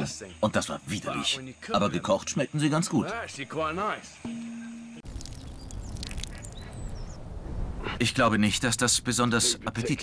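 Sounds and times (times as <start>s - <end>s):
faint high bird chirps: 4.1s - 7.2s
wind rumble on microphone: 5.1s - 8.0s.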